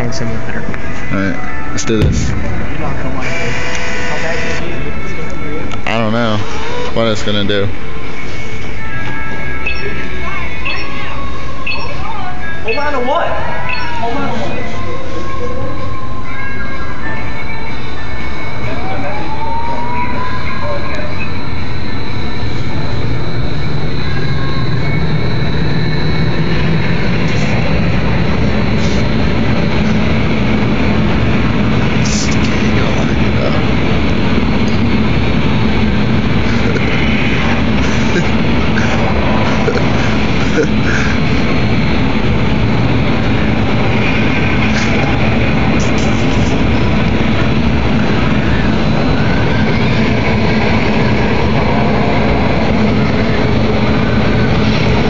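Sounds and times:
loud rush of wind from blowers: 0:22.2 - 0:55.0.

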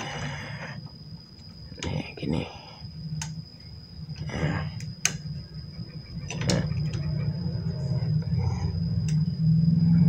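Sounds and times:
steady low hum: 0:00.0 - 0:10.0
thin high whine: 0:00.0 - 0:10.0.

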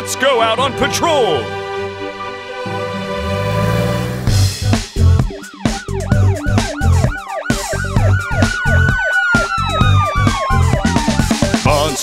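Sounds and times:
police siren wail: 0:02.2 - 0:11.7
long tone sliding downward: 0:02.6 - 0:04.6
thumping beat: 0:04.2 - 0:12.0.

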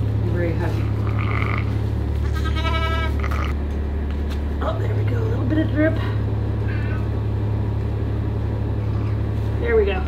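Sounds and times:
steady low hum: 0:00.0 - 0:10.0
sheep bleating: 0:01.0 - 0:03.6.

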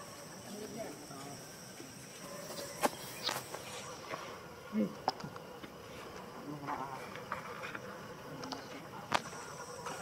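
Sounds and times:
faint outdoor background: 0:00.0 - 0:10.0
flying insect buzzing: 0:00.0 - 0:10.0.

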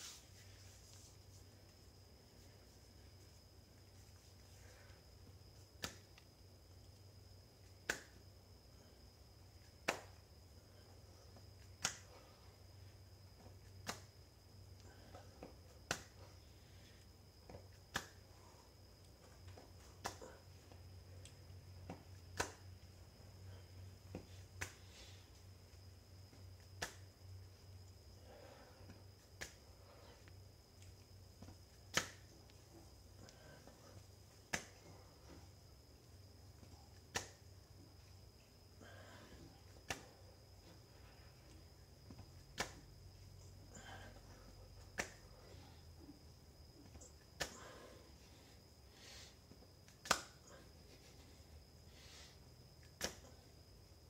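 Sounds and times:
hands slapping tile floor: 0:05.6 - 0:06.4, 0:07.6 - 0:08.2, 0:09.6 - 0:10.3, 0:11.6 - 0:12.4, 0:13.4 - 0:14.2, 0:14.8 - 0:20.4, 0:21.2 - 0:22.9, 0:23.5 - 0:25.2, 0:26.3 - 0:27.4, 0:28.3 - 0:38.1, 0:38.8 - 0:40.8, 0:41.5 - 0:43.0, 0:43.8 - 0:45.6, 0:46.8 - 0:48.0, 0:49.0 - 0:51.3, 0:52.8 - 0:53.6
faint breaths: 0:27.4 - 0:31.6, 0:32.5 - 0:36.9, 0:37.9 - 0:41.8, 0:43.1 - 0:49.7, 0:50.3 - 0:52.6.

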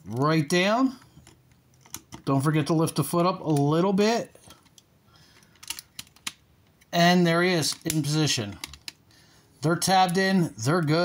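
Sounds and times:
plastic parts clicking and rattling: 0:00.1 - 0:02.3, 0:04.4 - 0:06.8, 0:07.6 - 0:09.0.

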